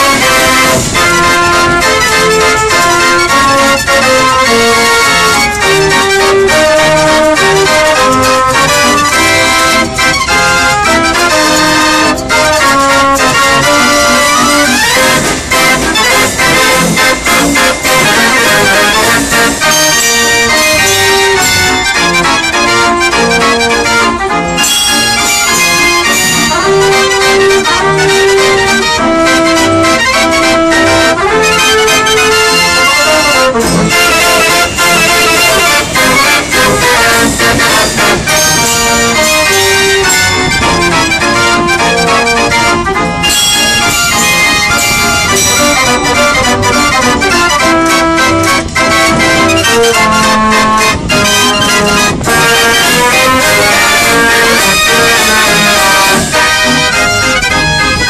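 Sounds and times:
street organ playing a tune: 0.0s - 58.0s.

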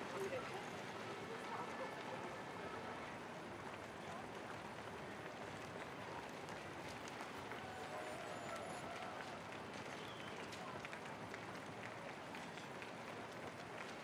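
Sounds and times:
crowd hubbub: 0.0s - 14.0s
footsteps on cobblestones: 0.0s - 14.0s.

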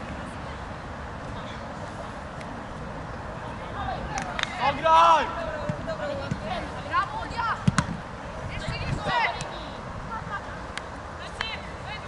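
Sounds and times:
players shouting: 3.5s - 7.8s
football kicks: 7.6s - 8.0s.

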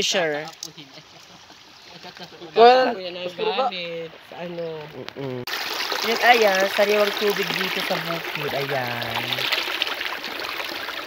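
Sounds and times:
stream running over rocks: 3.9s - 11.0s.

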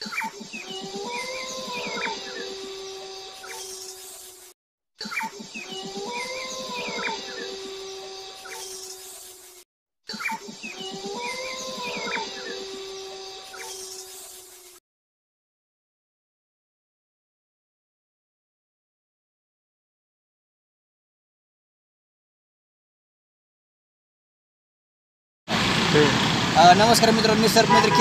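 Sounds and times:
high bird-like chirps: 0.0s - 14.8s.

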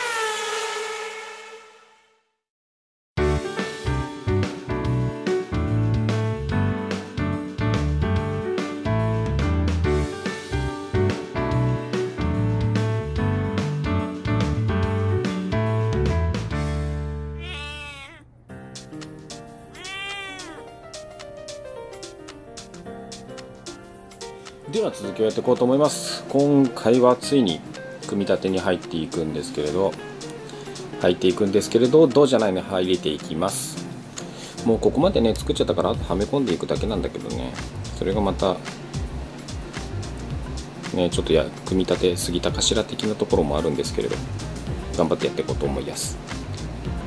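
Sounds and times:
whistle-like tone with hiss: 0.0s - 2.2s
background music: 3.2s - 17.5s, 18.4s - 47.0s
cat meowing: 17.4s - 18.3s, 19.7s - 20.8s.

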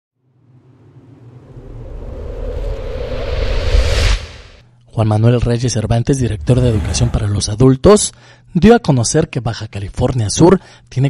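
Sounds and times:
low rumble: 0.2s - 4.7s, 6.0s - 7.7s
rising hiss: 0.9s - 4.6s, 6.2s - 7.5s.

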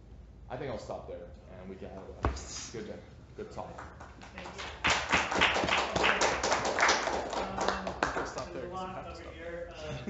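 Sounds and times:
audience applause: 4.4s - 8.4s.

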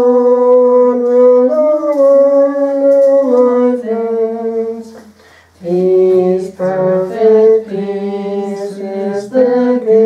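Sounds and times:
person singing long held notes: 0.0s - 10.0s.

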